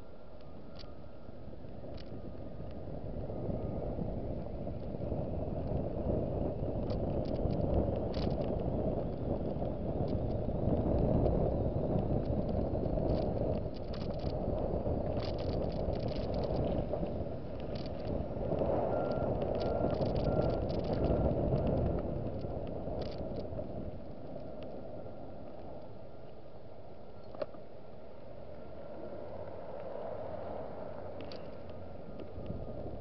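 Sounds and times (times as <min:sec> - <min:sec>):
car engine and tyres rumbling: 0:00.0 - 0:33.0
small clicks and rattles: 0:00.7 - 0:00.9, 0:01.9 - 0:02.8, 0:06.8 - 0:08.7, 0:12.0 - 0:24.8, 0:31.2 - 0:32.6.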